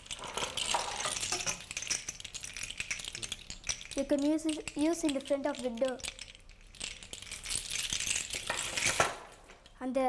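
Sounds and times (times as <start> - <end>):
seashells clinking and rattling: 0.0 - 9.8.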